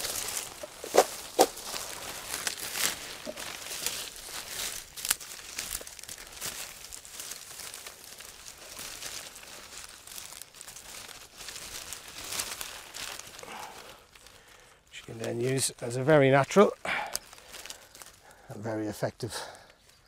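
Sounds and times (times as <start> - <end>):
reed stems snapping: 0.0 - 18.5
dry reeds rustling and crackling: 0.0 - 20.0.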